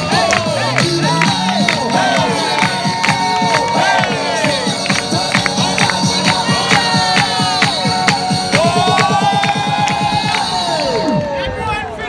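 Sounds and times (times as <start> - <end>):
pop dance music: 0.0 - 11.1
crowd cheering and whooping: 0.0 - 12.0.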